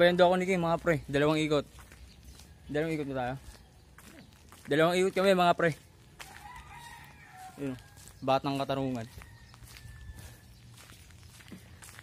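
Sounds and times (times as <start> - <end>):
footsteps on rough pavement: 0.0 - 12.0.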